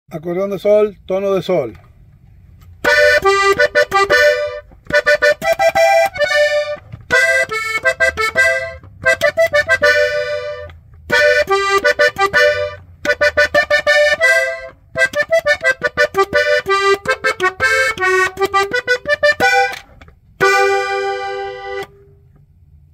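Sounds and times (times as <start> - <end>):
button accordion melody: 2.8 - 22.2.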